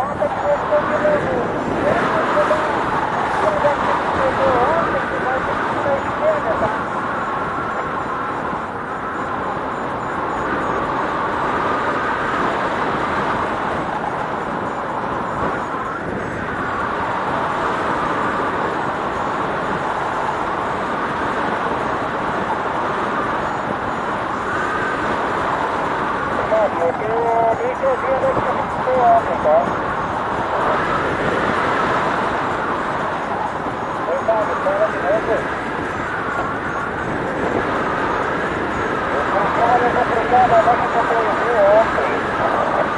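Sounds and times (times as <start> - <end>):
wind rushing over microphone: 0.0 - 42.9.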